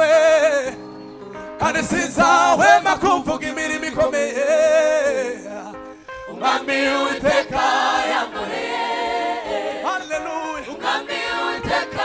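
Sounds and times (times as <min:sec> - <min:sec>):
male lead vocalists singing: 0:01.6 - 0:08.2
choir singing gospel song: 0:01.6 - 0:12.0.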